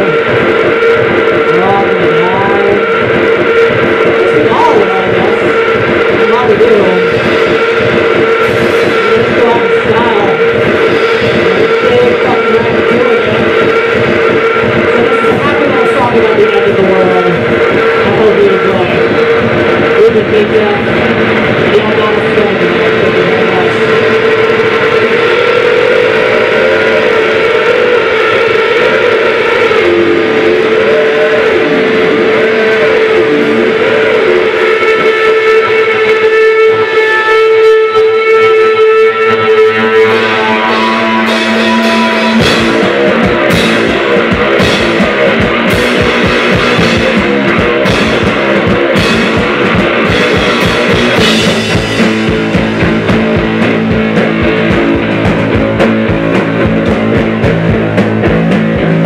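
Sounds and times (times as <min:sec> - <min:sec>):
person singing: 0:00.0 - 0:58.0
distorted noise: 0:00.0 - 0:59.0
drum kit with cymbals: 0:00.0 - 0:59.0
electric guitar: 0:00.0 - 0:59.0
sustained drone tone: 0:00.0 - 0:59.0.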